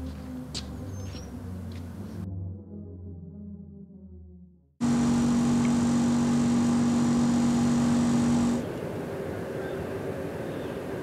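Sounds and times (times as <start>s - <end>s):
outdoor background hum: 0.0s - 4.0s, 4.8s - 11.0s
air conditioner fan humming: 4.8s - 8.7s.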